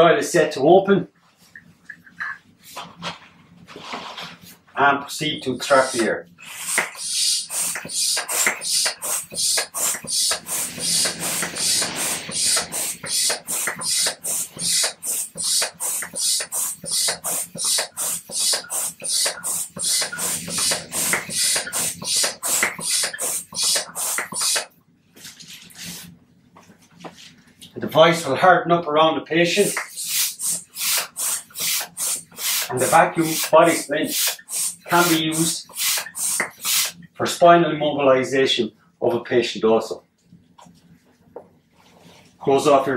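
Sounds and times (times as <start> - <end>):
hand vacuum pump hissing strokes: 5.7 - 24.7, 29.6 - 37.0.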